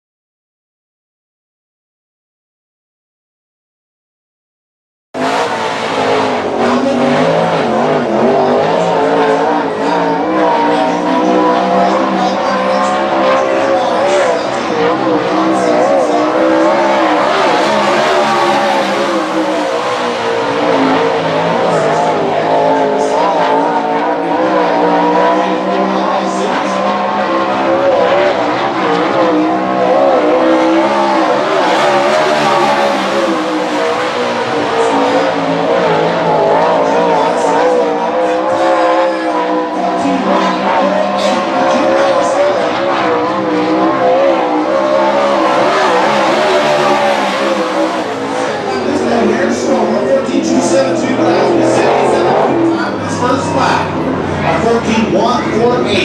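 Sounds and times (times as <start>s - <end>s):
race car engine running hard: 5.2s - 56.0s.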